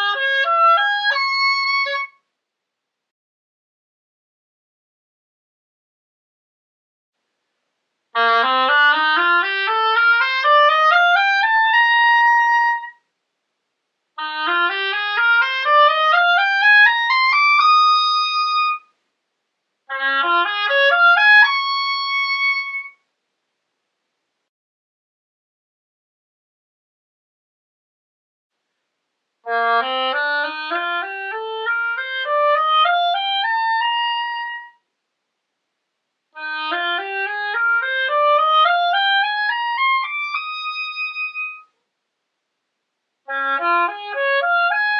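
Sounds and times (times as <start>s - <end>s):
oboe playing rising scale: 0.0s - 2.1s, 8.2s - 13.0s, 14.2s - 18.8s, 19.9s - 23.0s, 29.5s - 34.8s, 36.4s - 41.7s, 43.3s - 44.9s.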